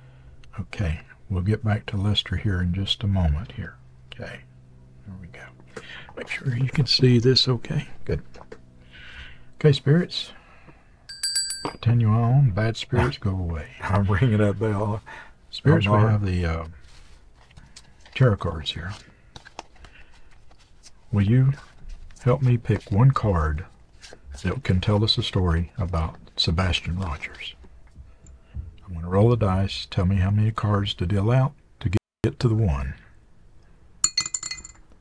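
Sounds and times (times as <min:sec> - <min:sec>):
tarot cards clicking and tapping: 0:19.3 - 0:20.6.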